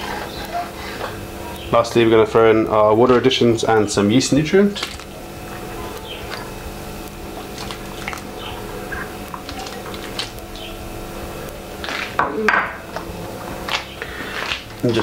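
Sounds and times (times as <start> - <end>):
liquid boiling in a kettle: 0.0 - 15.0.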